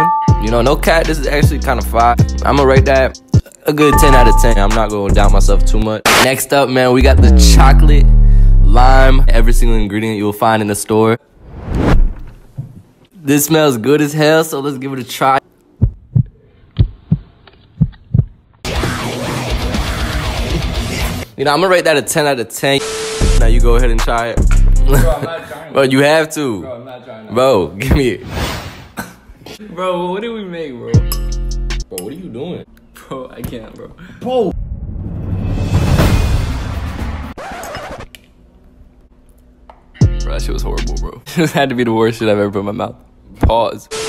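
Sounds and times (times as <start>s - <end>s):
heartbeat thumps: 15.8s - 18.5s.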